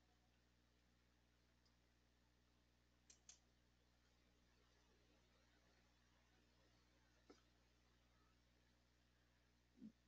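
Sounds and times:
faint short clicks: 3.0 - 3.4.

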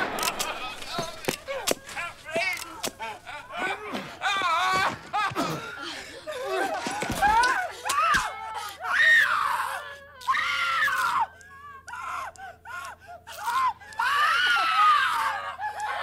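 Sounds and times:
woman screaming in terror: 6.3 - 16.0.

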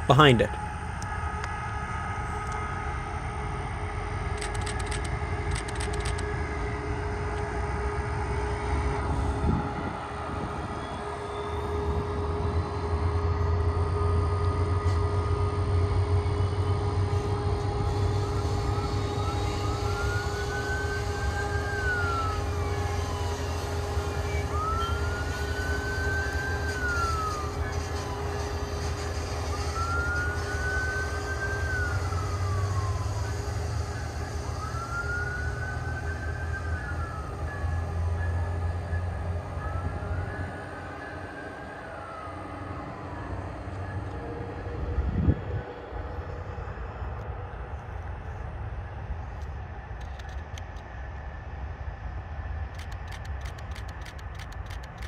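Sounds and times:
siren wailing: 0.0 - 48.3
diesel locomotive rumble: 0.0 - 55.0.

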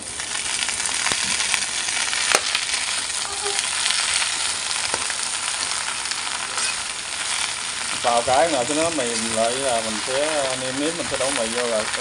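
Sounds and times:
greens sizzling in a wok: 0.0 - 12.0.

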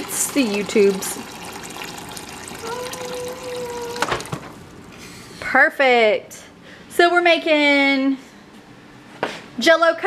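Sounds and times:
water running into a cup: 0.0 - 4.7
dispenser hum: 0.0 - 6.7.

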